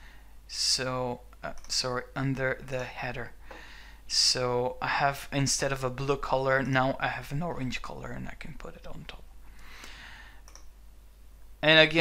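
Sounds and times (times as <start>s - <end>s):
soft hiss: 0.0s - 12.0s
computer mouse clicks: 1.5s - 1.8s, 10.4s - 10.8s.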